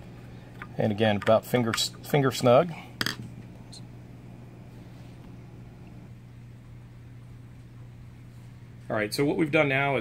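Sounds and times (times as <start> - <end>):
low room tone hum: 0.0 - 10.0.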